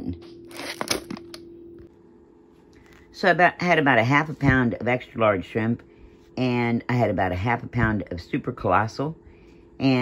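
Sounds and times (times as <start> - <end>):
low hum: 0.0 - 10.0
plastic packaging crinkling: 0.5 - 1.4.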